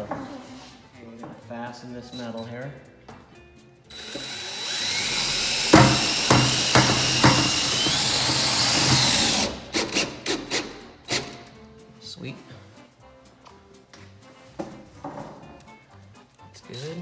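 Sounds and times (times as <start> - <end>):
cordless drill driving screw: 3.9 - 11.4
sharp knocks: 5.7 - 7.8.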